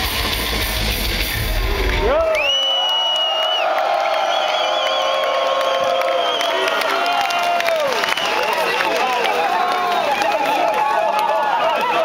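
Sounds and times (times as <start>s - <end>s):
crowd cheering: 0.0s - 12.0s
shouted whoops: 2.0s - 12.0s.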